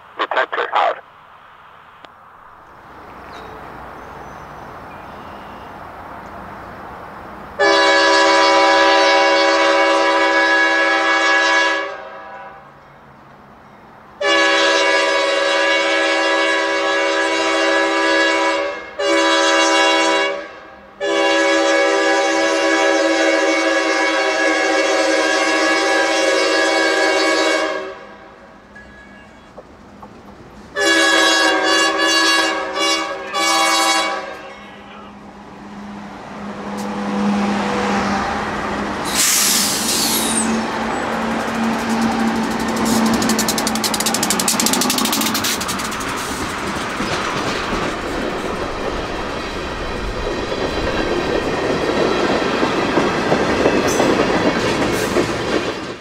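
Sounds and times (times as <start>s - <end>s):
locomotive air horn blasts: 7.6s - 12.6s, 14.2s - 28.3s, 30.8s - 34.9s
train wheels clickety-clack: 29.5s - 30.6s, 39.1s - 56.0s.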